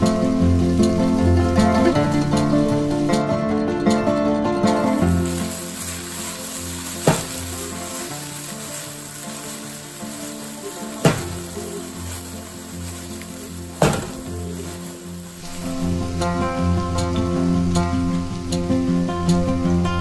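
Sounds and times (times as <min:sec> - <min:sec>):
okra sizzling in oil: 0:04.7 - 0:19.9.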